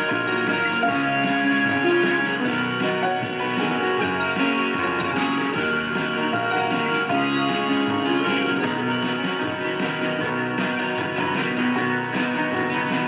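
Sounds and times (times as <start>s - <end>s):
guitar music from radio speaker: 0.0s - 13.0s.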